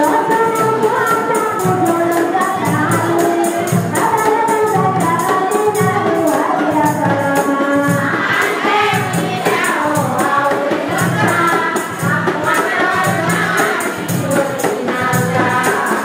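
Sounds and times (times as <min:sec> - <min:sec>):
drum beat: 0:00.0 - 0:16.0
jingling tambourine percussion: 0:00.0 - 0:16.0
women singing together: 0:00.0 - 0:16.0.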